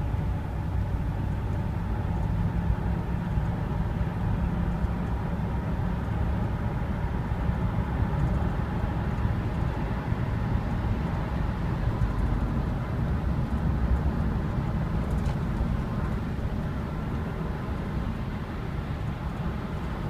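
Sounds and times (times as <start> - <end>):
car cabin drone while cruising: 0.0 - 20.0
low engine and road rumble: 0.0 - 20.0.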